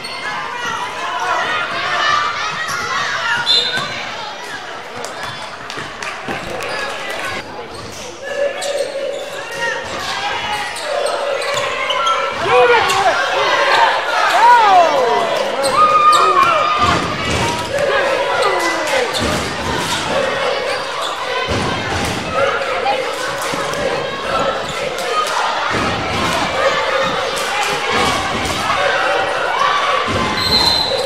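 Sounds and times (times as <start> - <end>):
sneakers squeaking: 2.5 - 4.1, 5.2 - 25.2
people calling out: 8.2 - 31.0.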